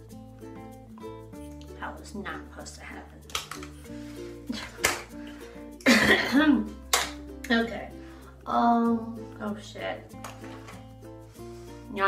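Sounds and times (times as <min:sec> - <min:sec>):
background music: 0:00.0 - 0:12.0
woman coughing: 0:05.8 - 0:06.6.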